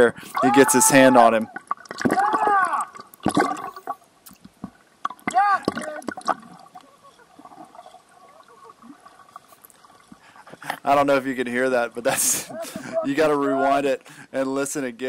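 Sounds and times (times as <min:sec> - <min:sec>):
bubbling: 0:00.0 - 0:13.0
voice squealing underwater: 0:00.4 - 0:03.1, 0:05.2 - 0:09.0
water sloshing: 0:00.4 - 0:13.1.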